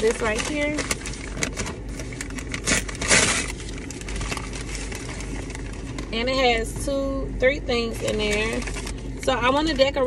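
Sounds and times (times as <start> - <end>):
paper bag rustling and crinkling: 0.0 - 6.2, 8.0 - 9.1.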